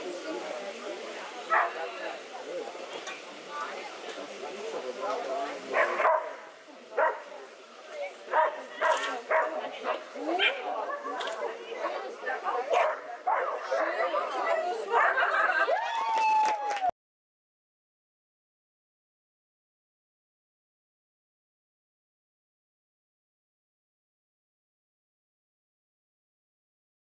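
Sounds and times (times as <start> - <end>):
dog barking: 1.5 - 1.8, 5.7 - 6.4, 7.0 - 7.3, 8.3 - 9.6, 12.7 - 14.1, 14.9 - 15.2.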